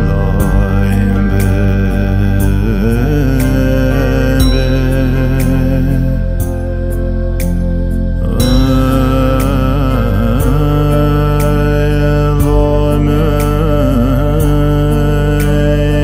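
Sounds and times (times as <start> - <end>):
person singing chant-like melody: 0.0 - 16.0
sustained backing music: 0.0 - 16.0.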